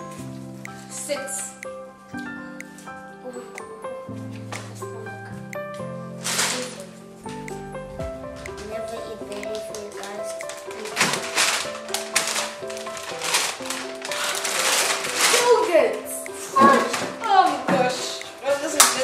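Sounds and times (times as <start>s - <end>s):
background music: 0.0s - 19.0s
paper bag crackling: 9.9s - 16.1s.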